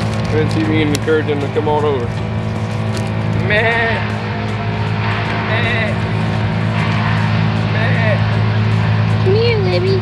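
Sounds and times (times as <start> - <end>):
engine droning: 0.0 - 10.0
goat bleating: 3.4 - 4.2.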